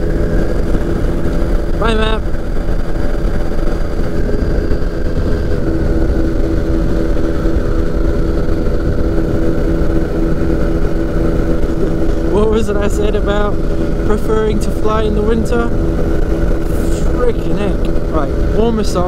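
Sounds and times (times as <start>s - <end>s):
wind rushing: 0.0s - 18.9s
microlight engine drone: 0.0s - 19.0s.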